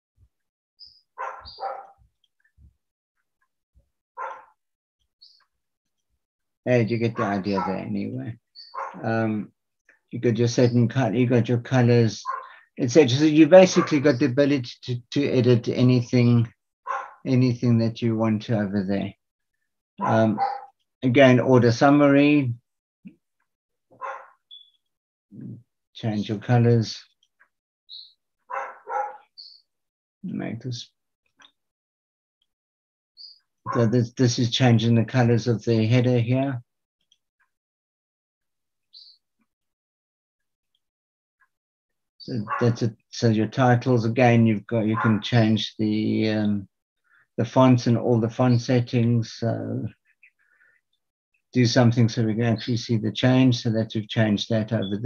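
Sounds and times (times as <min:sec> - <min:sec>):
dog barking: 0:01.2 - 0:02.0, 0:04.2 - 0:04.5, 0:07.2 - 0:07.9, 0:08.8 - 0:09.0, 0:12.2 - 0:12.6, 0:16.9 - 0:17.2, 0:20.0 - 0:20.7, 0:24.0 - 0:24.4, 0:28.5 - 0:29.3, 0:42.5 - 0:42.8, 0:44.9 - 0:45.2.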